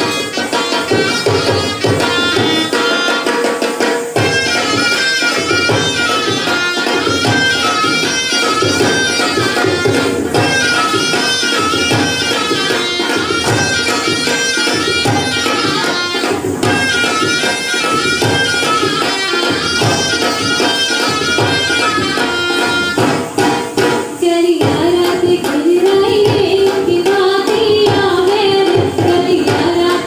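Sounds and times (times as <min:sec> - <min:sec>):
steady drumming: 0:00.0 - 0:30.0.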